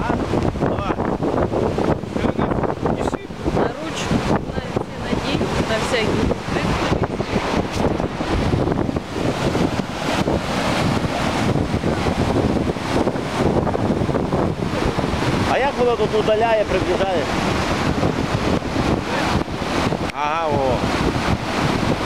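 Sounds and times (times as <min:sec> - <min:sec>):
floodwater rushing: 0:00.0 - 0:22.0
wind on microphone: 0:00.0 - 0:22.0.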